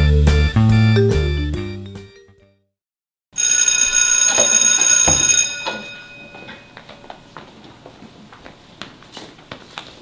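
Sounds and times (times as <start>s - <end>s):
electric school bell ringing: 3.4s - 7.2s.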